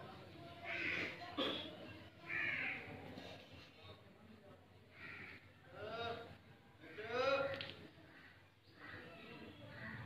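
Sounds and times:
crow cawing: 0.7s - 1.1s, 2.3s - 2.9s, 4.9s - 5.4s.

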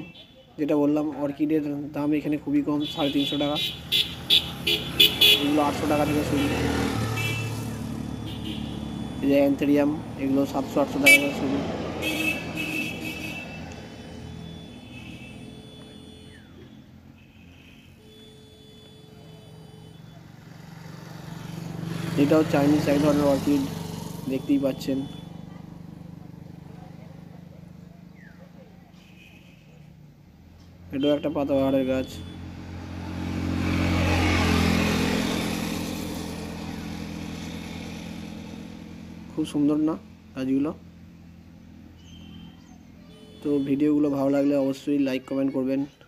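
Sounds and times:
motor vehicle passing by: 3.6s - 17.2s, 19.2s - 29.0s, 31.7s - 43.2s.

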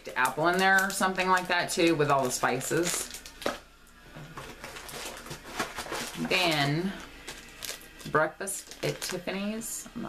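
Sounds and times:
packaging rustling: 0.2s - 9.4s.

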